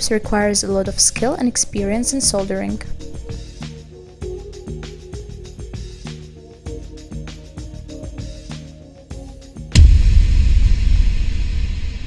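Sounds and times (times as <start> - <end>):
deep cinematic rumble: 9.8 - 12.0.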